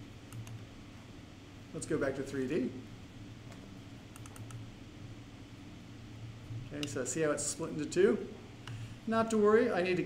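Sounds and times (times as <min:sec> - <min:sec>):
low steady hum: 0:00.0 - 0:10.0
computer mouse clicks: 0:00.3 - 0:00.6, 0:03.5 - 0:04.6.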